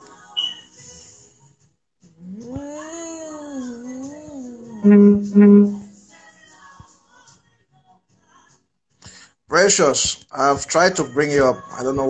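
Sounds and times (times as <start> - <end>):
long wavering vocal call: 0.4 - 0.7, 2.2 - 6.0
short high beep: 0.4 - 0.7, 4.8 - 5.9.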